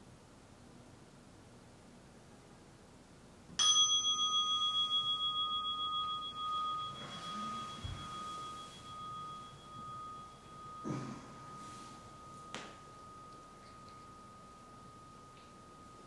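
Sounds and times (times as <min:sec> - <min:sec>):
meditation bell ringing: 0:03.6 - 0:16.0
robe rustling: 0:06.6 - 0:10.3.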